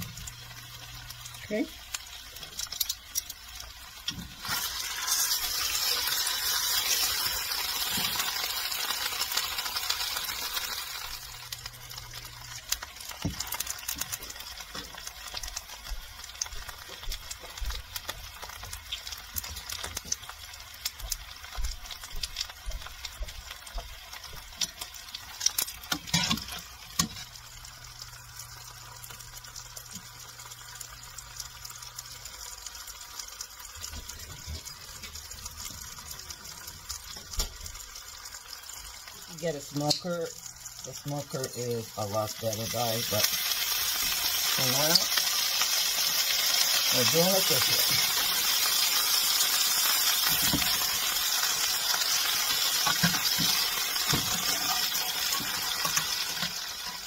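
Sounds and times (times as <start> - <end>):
food sizzling in a frying pan: 0.0 - 57.0
metal tongs clacking on pan: 25.5 - 27.2, 39.9 - 40.1.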